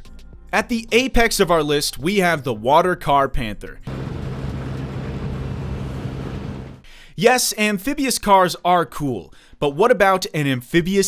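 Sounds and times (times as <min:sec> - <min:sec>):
engine drone: 0:03.9 - 0:06.9.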